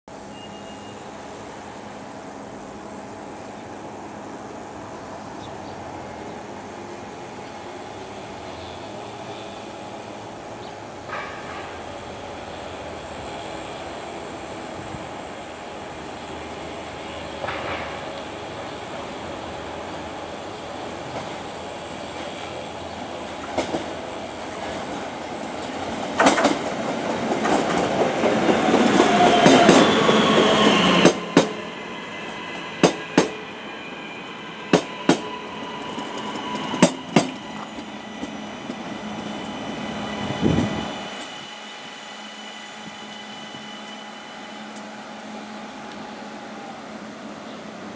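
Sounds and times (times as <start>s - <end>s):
electric train rumble and motor whine: 0.1s - 47.9s
wheels clicking over rail joints: 25.6s - 29.8s.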